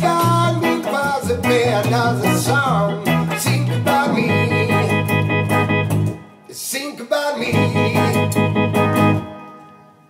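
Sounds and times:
band playing final chord: 3.8 - 6.2.

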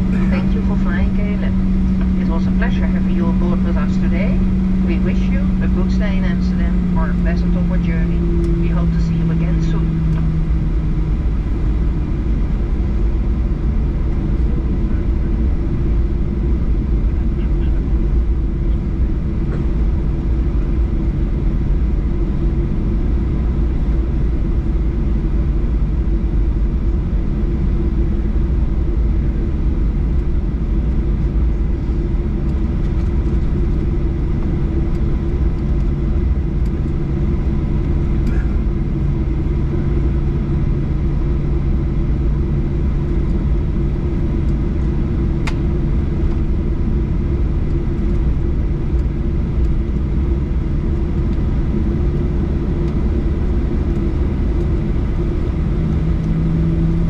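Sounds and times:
airplane cabin rumble taxiing: 0.0 - 57.0.

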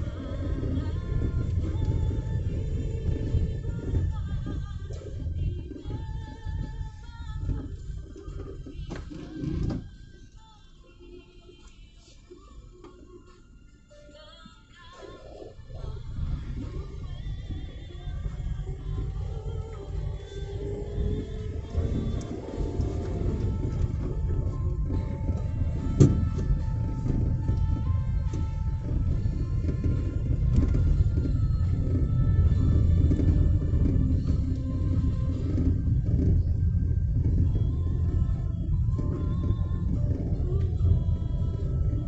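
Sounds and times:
car cabin rumble: 0.0 - 10.3, 14.4 - 42.0
faint music: 0.0 - 42.0.

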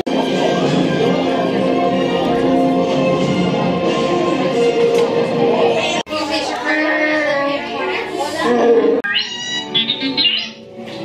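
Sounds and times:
background music: 0.0 - 11.0
robot toy beeps and whistles: 9.0 - 10.6.

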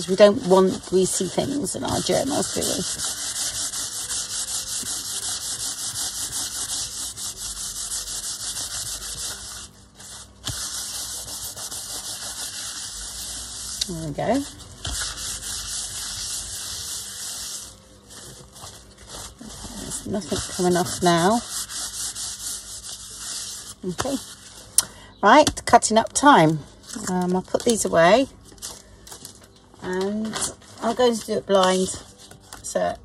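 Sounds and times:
cloth rubbing on paper: 0.0 - 24.7.

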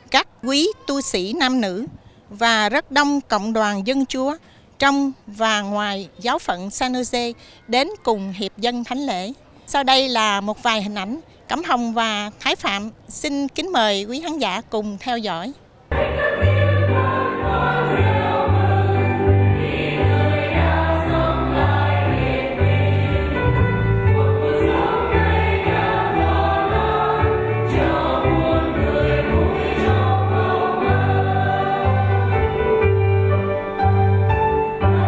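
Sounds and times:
choir singing a hymn: 15.9 - 35.0
instrumental accompaniment: 15.9 - 35.0
steady bass line: 15.9 - 35.0.

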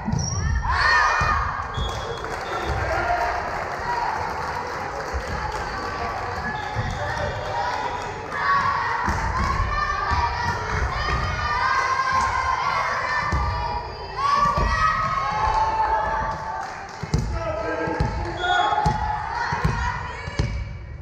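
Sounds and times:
girls shouting and chanting: 0.0 - 1.7, 5.2 - 16.7, 17.5 - 21.0
volleyball bouncing on floor: 16.2 - 20.7.

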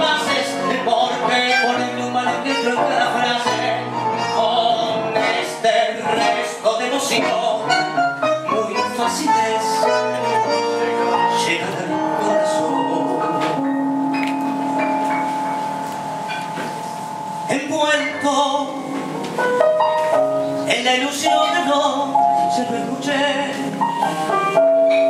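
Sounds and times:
tango trio playing: 0.0 - 25.0
struck piano notes: 7.2 - 25.0.

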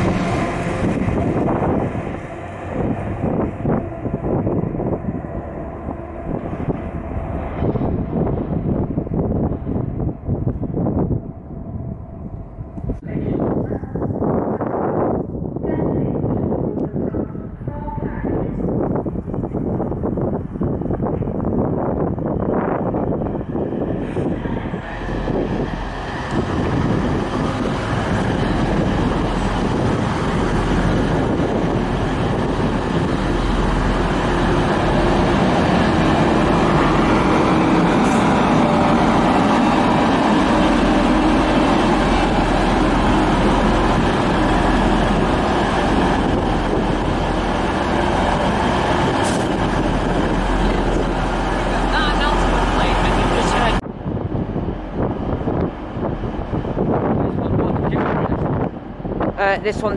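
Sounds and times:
diesel train engine drone: 0.0 - 59.9.

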